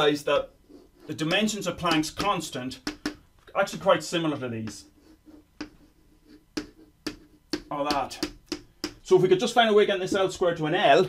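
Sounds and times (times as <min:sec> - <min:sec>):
chalk scratching: 0:00.6 - 0:01.4, 0:04.6 - 0:08.2
chalk tapping on blackboard: 0:01.2 - 0:03.2, 0:04.6 - 0:09.1.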